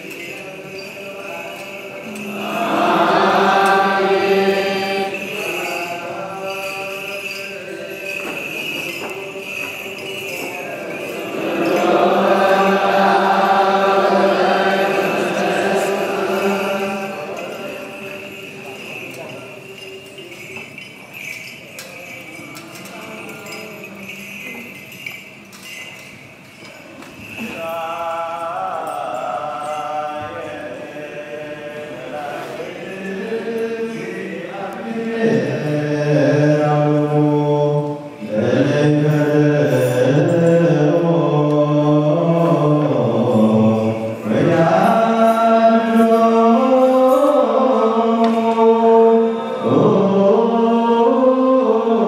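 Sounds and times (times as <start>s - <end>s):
liturgical chanting: 0.0s - 52.0s
small bells jingling: 0.0s - 52.0s.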